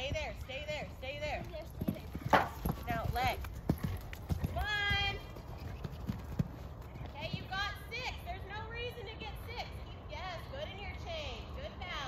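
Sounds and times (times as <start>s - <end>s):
hoofbeats on sand: 0.0s - 7.8s
horse landing thud: 2.2s - 2.9s.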